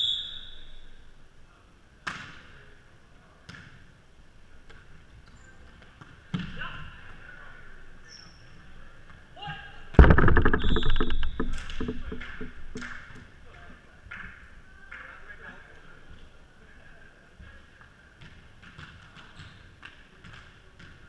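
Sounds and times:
ball thudding: 0:10.0 - 0:13.2.

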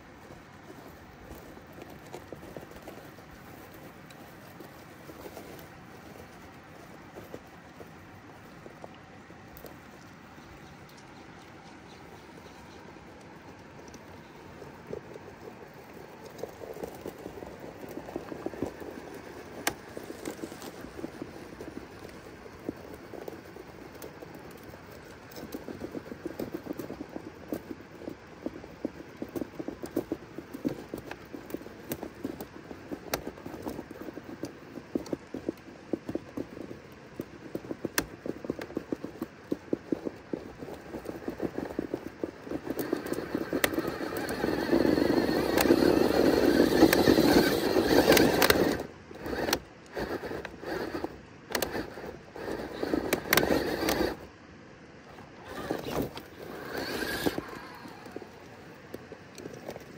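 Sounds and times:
tyres crunching on stones: 0:00.0 - 0:27.8, 0:28.4 - 0:54.3, 0:55.2 - 0:59.9
electric motor whirring: 0:41.0 - 0:54.2, 0:55.4 - 0:58.4.

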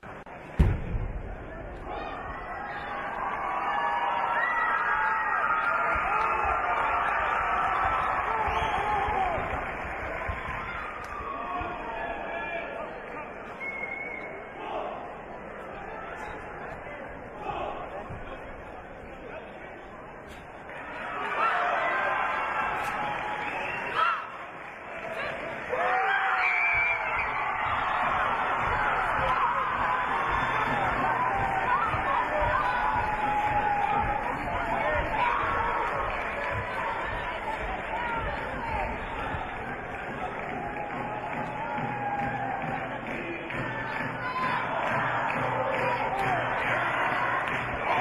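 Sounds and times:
crowd voices calling out: 0:20.3 - 0:48.0.

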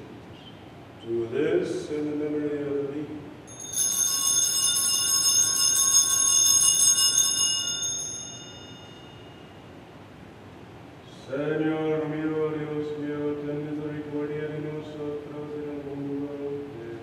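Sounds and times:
altar bells jingling: 0:03.5 - 0:09.6.

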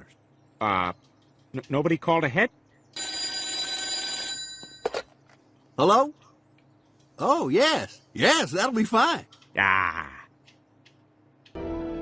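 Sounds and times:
telephone bell ringing: 0:03.0 - 0:05.1.

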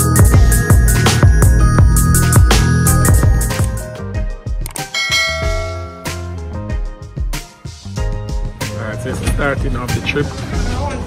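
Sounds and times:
electronic music with bass: 0:00.0 - 0:08.8
bell-like ding: 0:04.8 - 0:06.5.

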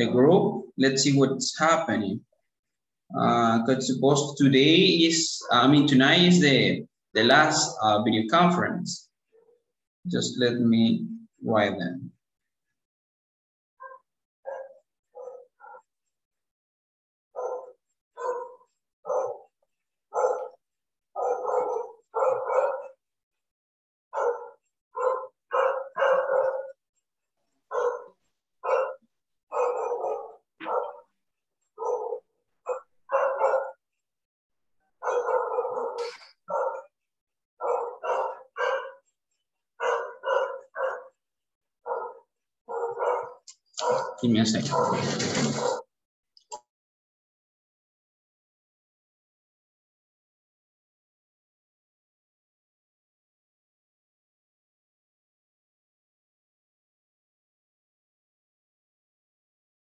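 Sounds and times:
dog barking: 0:13.8 - 0:15.9, 0:17.4 - 0:19.5, 0:20.1 - 0:20.6, 0:21.2 - 0:23.0, 0:24.2 - 0:26.8, 0:27.7 - 0:31.1, 0:31.8 - 0:33.8, 0:35.0 - 0:37.0, 0:37.6 - 0:39.1, 0:39.8 - 0:41.2, 0:41.8 - 0:45.9.

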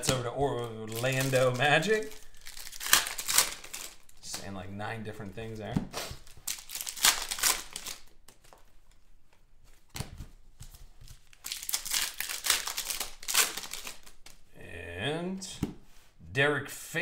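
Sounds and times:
foil wrapper crinkling and tearing: 0:00.0 - 0:04.3, 0:06.2 - 0:08.5, 0:11.1 - 0:14.4.

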